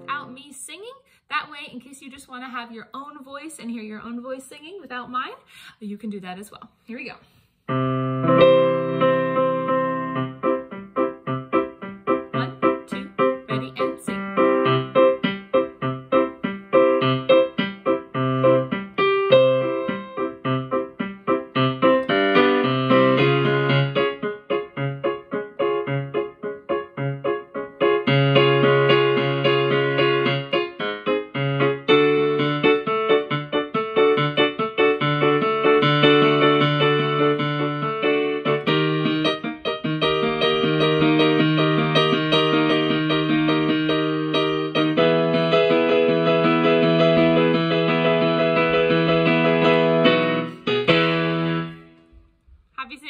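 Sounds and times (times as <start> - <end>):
piano block chords: 7.7 - 52.3.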